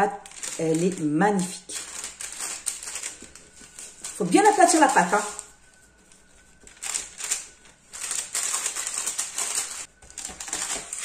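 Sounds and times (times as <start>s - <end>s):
baking paper crackling: 0.0s - 11.0s.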